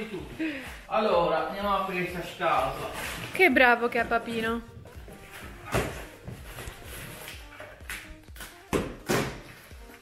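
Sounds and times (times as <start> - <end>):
packing tape ripping off cardboard: 5.2 - 10.0.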